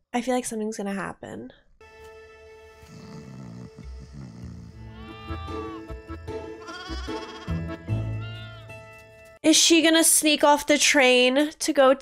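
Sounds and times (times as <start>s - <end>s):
soft film music: 1.8s - 9.4s
goat kid bleating: 4.9s - 5.9s, 6.6s - 8.7s.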